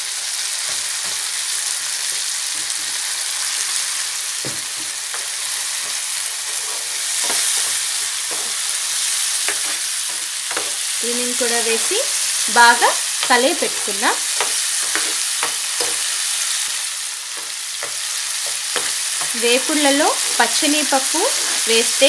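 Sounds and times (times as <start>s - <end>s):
vegetables sizzling in oil: 0.0s - 22.0s
spoon scraping a pan: 4.8s - 22.0s.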